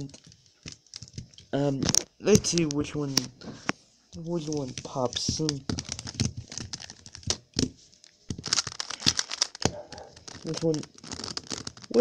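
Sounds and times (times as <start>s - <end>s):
puzzle cube clacking: 0.0s - 12.0s.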